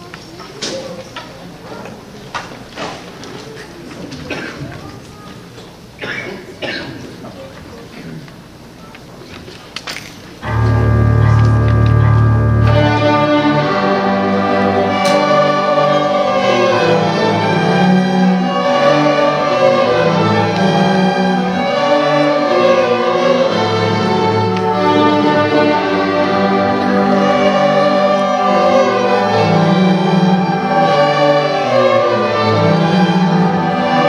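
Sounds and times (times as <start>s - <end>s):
string orchestra playing: 10.4s - 34.0s.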